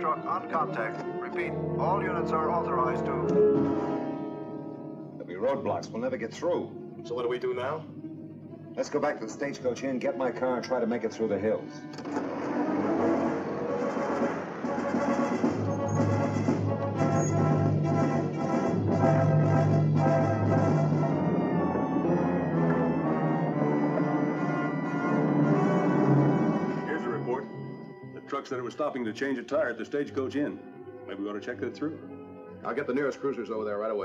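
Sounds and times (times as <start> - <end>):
sustained brass notes: 0.0 - 33.9.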